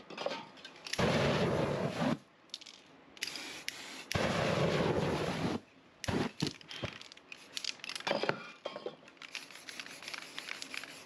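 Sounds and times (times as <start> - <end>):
rushing bursts of flame: 0.9 - 2.3, 3.3 - 6.5
aerosol spray hiss: 3.3 - 6.4, 9.4 - 11.0.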